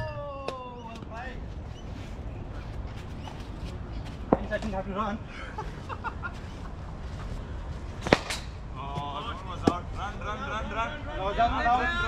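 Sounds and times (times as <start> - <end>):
cricket bat striking ball: 8.0 - 9.9.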